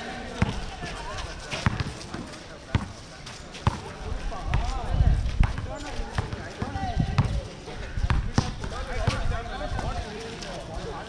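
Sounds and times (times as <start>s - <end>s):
people's voices: 0.0s - 11.0s
basketball bouncing on hard court: 1.6s - 1.9s.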